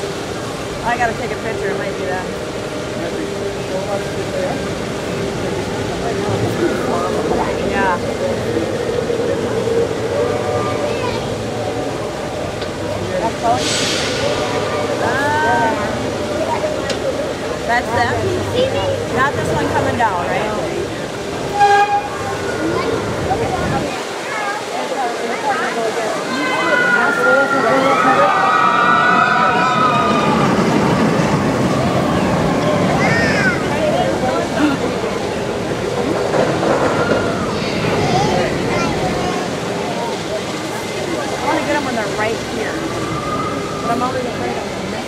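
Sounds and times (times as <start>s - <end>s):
roller coaster running on track: 0.0s - 45.0s
riders screaming: 26.3s - 31.0s.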